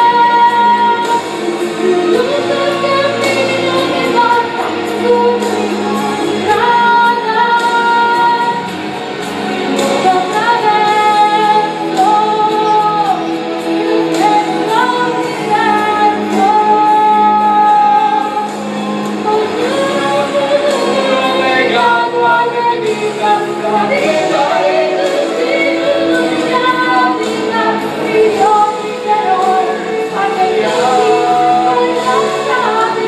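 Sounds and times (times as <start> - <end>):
instrumental accompaniment: 0.0 - 33.0
woman singing long held notes: 9.7 - 33.0.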